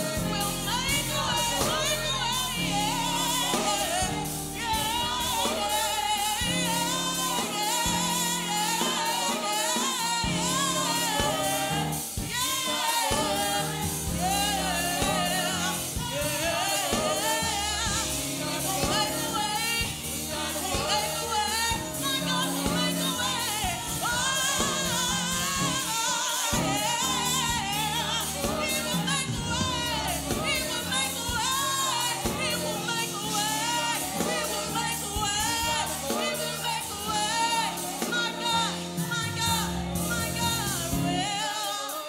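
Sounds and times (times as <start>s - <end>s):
band accompaniment with beat: 0.0s - 42.0s
gospel choir singing: 0.0s - 42.0s
woman singing lead: 0.0s - 42.0s.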